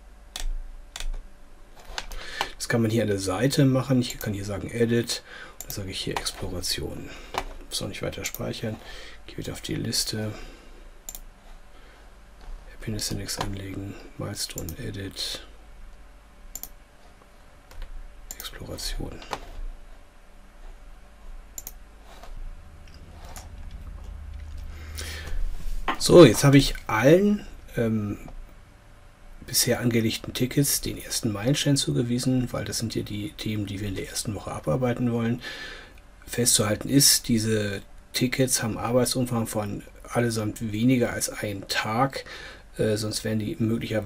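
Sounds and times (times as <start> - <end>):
low steady hum: 0.0 - 44.0
computer mouse clicking: 0.3 - 1.2, 11.1 - 11.3, 16.5 - 16.8, 21.6 - 22.3
computer input clicks: 16.5 - 16.8.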